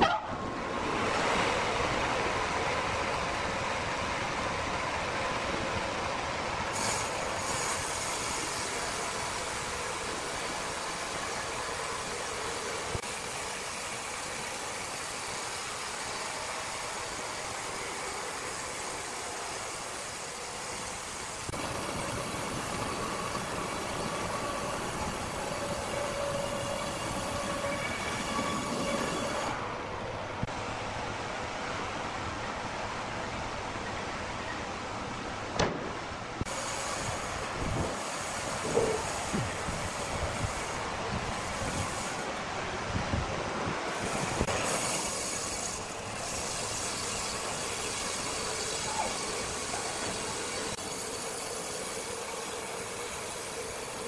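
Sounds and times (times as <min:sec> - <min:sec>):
band saw cutting log: 0:06.8 - 0:17.2, 0:36.5 - 0:42.3, 0:43.9 - 0:54.0.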